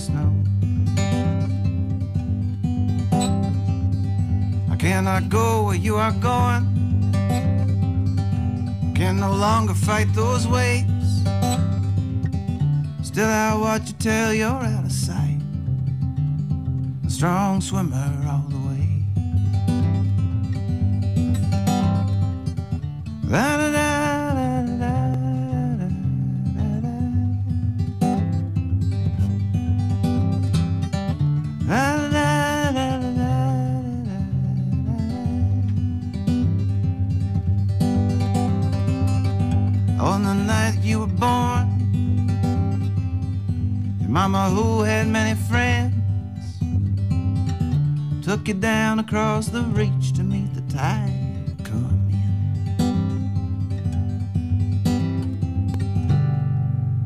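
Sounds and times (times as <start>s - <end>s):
man singing wordless phrases: 0.0s - 0.5s, 4.6s - 6.9s, 8.8s - 11.4s, 12.8s - 15.6s, 17.0s - 19.2s, 23.2s - 27.7s, 31.6s - 35.9s, 39.8s - 42.0s, 43.9s - 46.7s, 48.2s - 52.3s
acoustic guitar playing: 0.0s - 57.0s.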